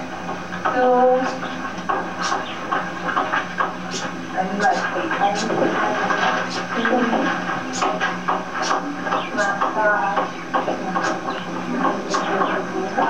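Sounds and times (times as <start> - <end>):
students chattering: 8.8 - 13.0.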